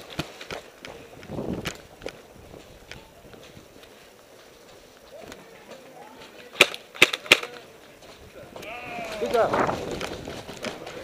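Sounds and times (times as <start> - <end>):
paintball markers firing pops: 6.5 - 7.6.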